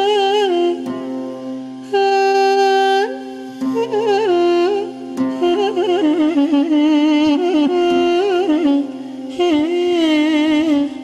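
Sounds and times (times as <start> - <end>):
melodic line with wide vibrato: 0.0 - 11.0.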